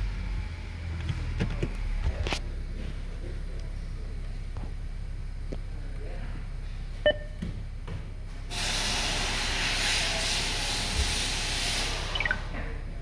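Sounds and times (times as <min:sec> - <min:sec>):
short electronic beep: 0:07.1 - 0:07.4, 0:12.2 - 0:12.4
falling beeps: 0:12.2 - 0:12.4.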